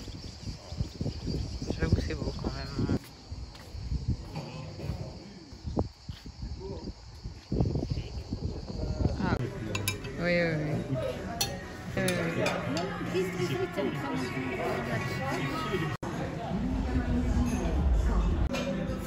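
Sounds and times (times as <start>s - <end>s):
cicadas buzzing: 0.0s - 10.3s
voices talking at a table: 0.3s - 7.2s, 7.8s - 19.0s
glasses and cutlery clinking: 9.6s - 10.2s, 11.4s - 13.1s.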